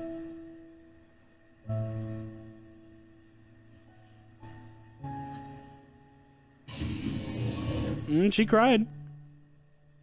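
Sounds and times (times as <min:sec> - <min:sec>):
soft soundtrack music: 0:00.0 - 0:10.0.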